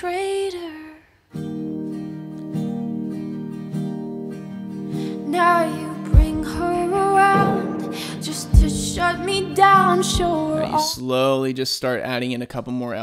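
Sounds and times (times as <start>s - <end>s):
woman singing pop ballad: 0.0s - 1.1s, 5.0s - 11.0s
guitar chords strummed: 1.4s - 11.0s.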